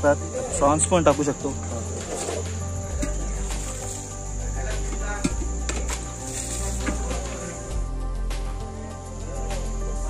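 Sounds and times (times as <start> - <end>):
background music with bass line: 0.0 - 10.0
crickets trilling: 0.0 - 10.0.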